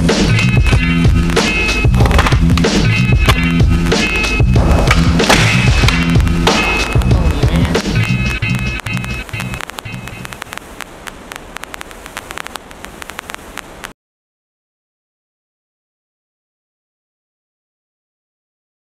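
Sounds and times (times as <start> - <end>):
music with bass line: 0.0 - 10.3
skateboard clicks and knocks: 2.0 - 4.2.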